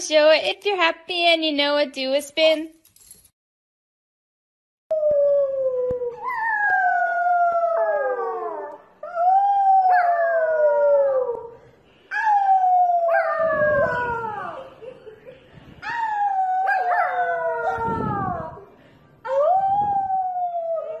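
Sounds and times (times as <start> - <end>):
puppy howling: 15.8 - 18.6.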